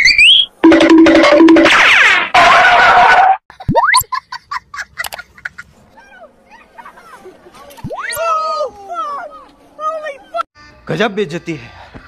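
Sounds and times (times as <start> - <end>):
comedy sound effects: 0.0 - 4.1.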